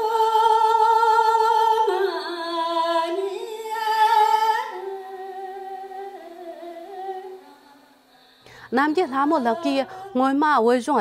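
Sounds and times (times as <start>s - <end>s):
woman singing wordless melody: 0.0s - 7.9s, 8.5s - 11.0s.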